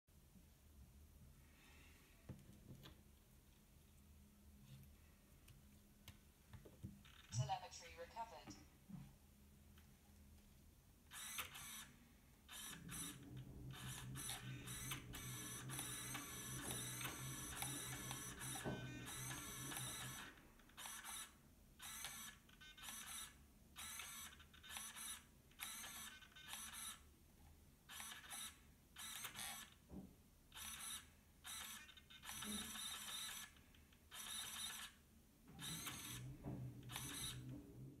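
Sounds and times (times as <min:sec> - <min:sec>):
micro servo whirring: 0:11.1 - 0:11.9, 0:12.5 - 0:27.0, 0:27.9 - 0:29.8, 0:30.6 - 0:35.0, 0:35.6 - 0:37.5.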